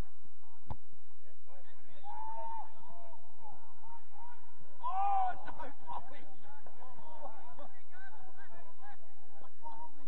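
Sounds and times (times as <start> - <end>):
players shouting: 1.7 - 10.0.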